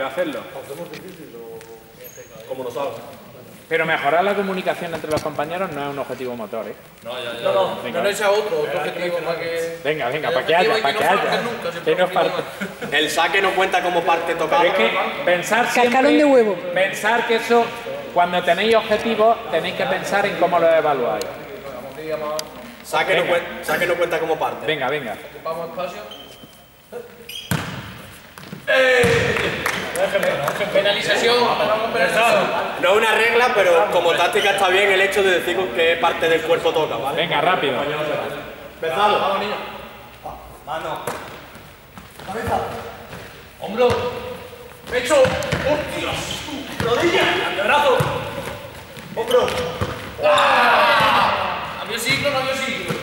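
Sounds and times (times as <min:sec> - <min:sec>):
young men shouting together: 0:50.2 - 0:51.8.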